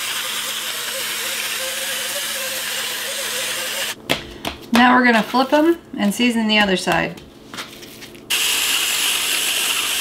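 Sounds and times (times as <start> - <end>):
electric seasoning grinder running: 0.0 - 4.0, 8.3 - 10.0.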